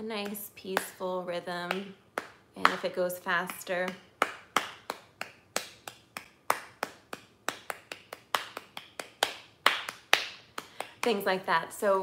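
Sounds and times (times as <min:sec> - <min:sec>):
rhythmic hand claps: 0:00.2 - 0:11.5.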